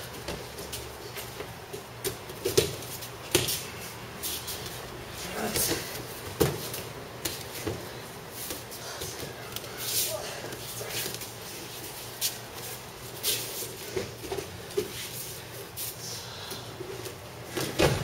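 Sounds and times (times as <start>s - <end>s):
thuds and slaps of falls on mats: 17.5s - 18.0s.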